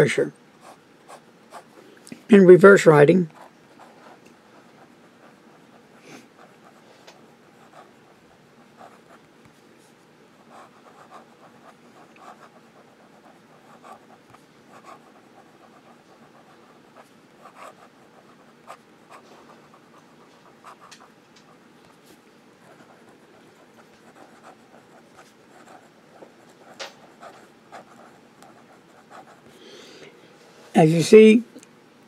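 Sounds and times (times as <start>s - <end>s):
fountain pen scratching paper: 3.3s - 9.6s, 10.4s - 29.6s.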